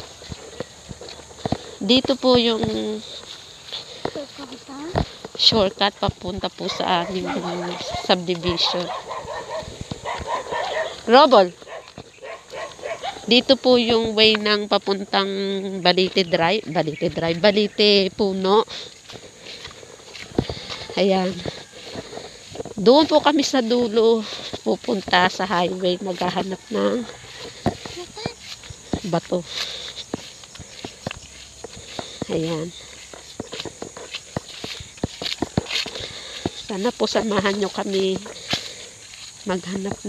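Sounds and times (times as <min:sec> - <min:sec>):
footsteps on rocky dirt path: 0:00.0 - 0:40.0
dog yipping: 0:06.7 - 0:11.1, 0:11.7 - 0:13.3.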